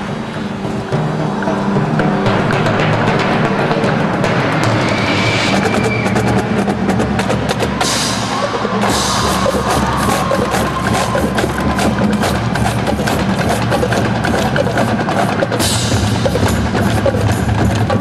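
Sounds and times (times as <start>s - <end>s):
marching band playing: 0.0s - 18.0s
rapid drum strokes: 0.0s - 18.0s.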